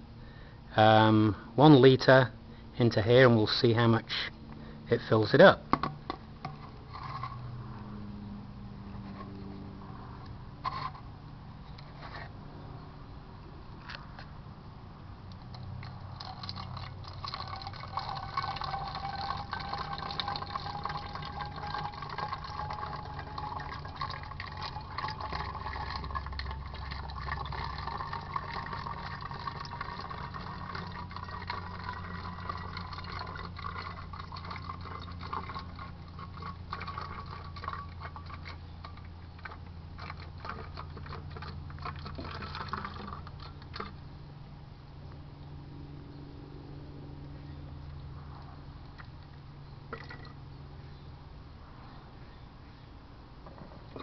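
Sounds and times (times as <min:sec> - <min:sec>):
water pouring into plastic bottle: 0:15.4 - 0:44.0, 0:49.9 - 0:50.4.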